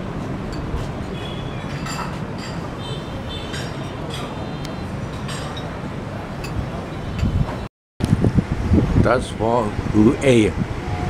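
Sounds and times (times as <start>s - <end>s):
distant city traffic rumble: 0.0s - 11.0s.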